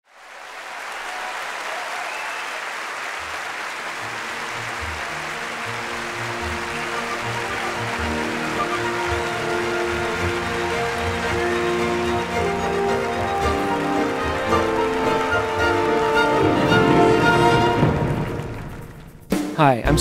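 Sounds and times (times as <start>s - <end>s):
audience applause: 0.0s - 19.3s
symphony orchestra playing: 4.1s - 19.0s.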